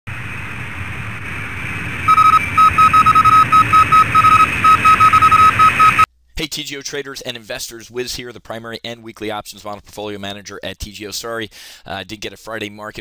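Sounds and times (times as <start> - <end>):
radio static hiss: 0.1 - 6.1
short high beeps: 2.1 - 6.1.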